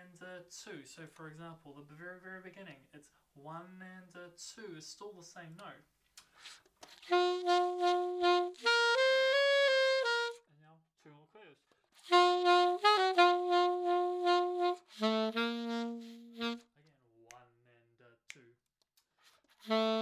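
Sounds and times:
alto saxophone playing sustained notes: 7.1 - 10.4, 12.0 - 16.7, 19.6 - 20.0.

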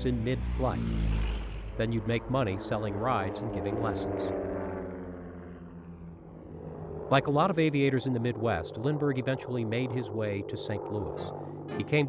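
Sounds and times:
propeller airplane engine droning: 0.0 - 12.0.

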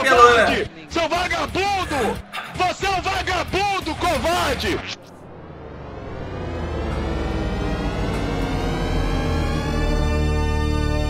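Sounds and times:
loud low rumble: 5.1 - 10.7
sustained droning tones: 5.1 - 11.0.

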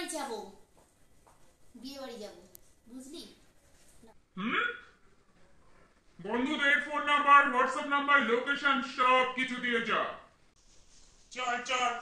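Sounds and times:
person's short voiced utterances: 4.4 - 4.9.

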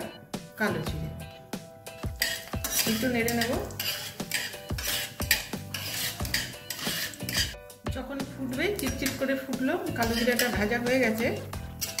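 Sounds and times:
seeds sizzling in hot oil: 1.9 - 7.6
metal spatula scraping a pan: 1.9 - 7.7, 8.5 - 12.0.

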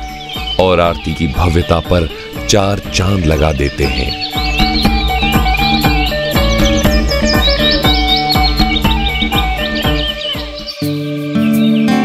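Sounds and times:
background music with drum beat: 0.0 - 12.0
many birds chirping: 0.0 - 12.0.

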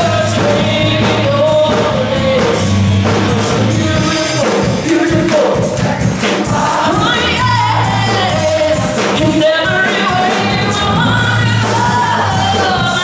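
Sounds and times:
drums: 0.0 - 13.0
electric guitars: 0.0 - 13.0
keyboard: 0.0 - 13.0
woman singing: 6.4 - 13.0.

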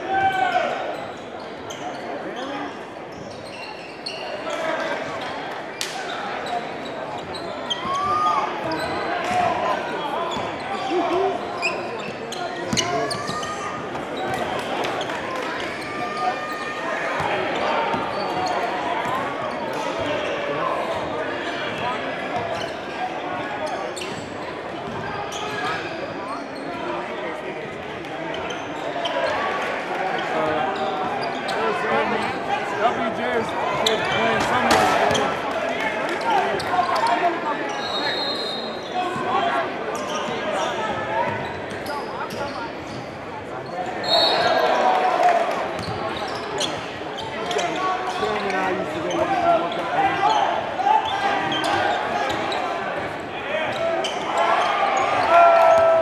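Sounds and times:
crowd chatter: 0.0 - 56.0
players' voices echoing: 0.0 - 56.0.

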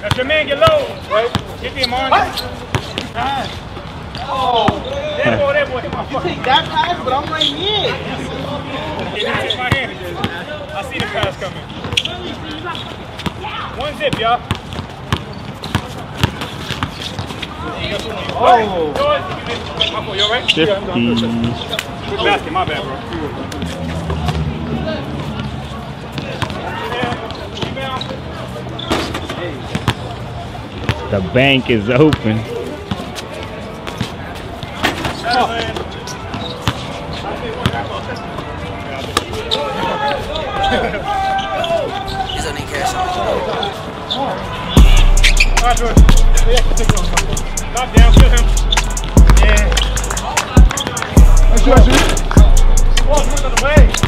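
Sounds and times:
basketball bouncing on court: 0.0 - 1.5, 14.1 - 17.3, 49.0 - 54.0
players calling out: 15.2 - 54.0.

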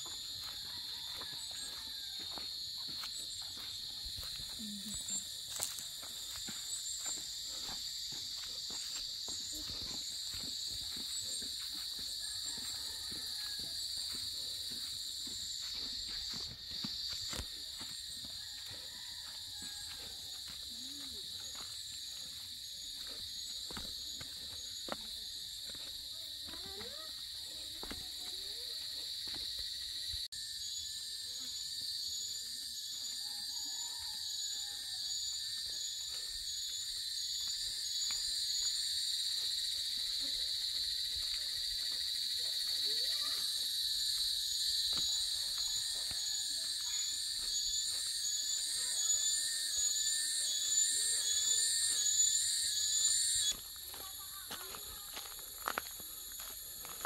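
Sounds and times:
high-pitched insect drone: 0.0 - 57.0
pulsing insect call: 0.0 - 57.0.

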